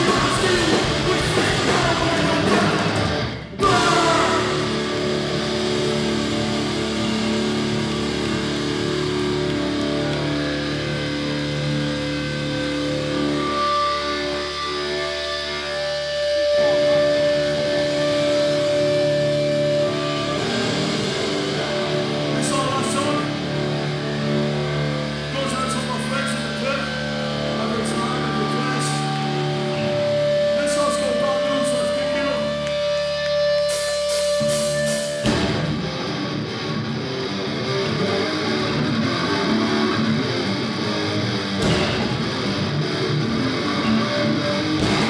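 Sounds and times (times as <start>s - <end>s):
amp feedback: 0.0s - 45.0s
electric guitars ringing: 0.0s - 45.0s.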